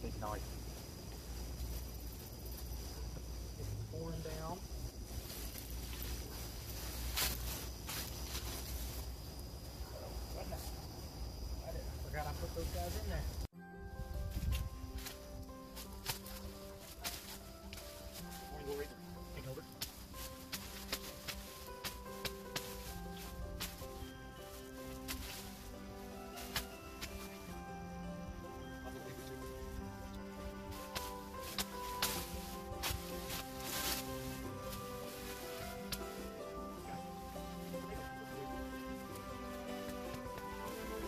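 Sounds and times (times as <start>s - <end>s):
background music: 12.1s - 41.0s
machete hacking through stalks: 30.9s - 33.1s.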